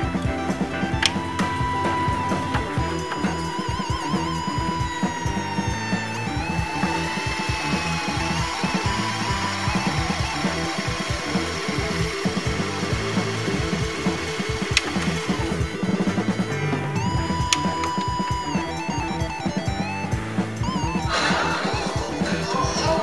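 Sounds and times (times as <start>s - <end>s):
tape deck stopping click: 0.0s - 22.5s
music with steady beat: 0.0s - 23.0s
tape deck rewinding whir: 0.0s - 23.0s.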